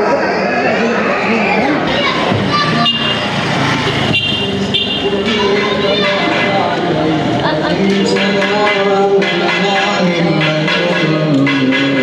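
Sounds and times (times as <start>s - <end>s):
background voices: 0.0s - 12.0s
motorbike engines running: 1.8s - 12.0s
vehicle horn tooting: 4.1s - 5.2s, 8.0s - 12.0s.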